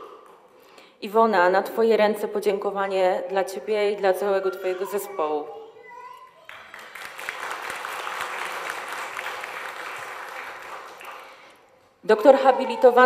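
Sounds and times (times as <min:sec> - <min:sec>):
audience applauding: 0:06.4 - 0:11.7.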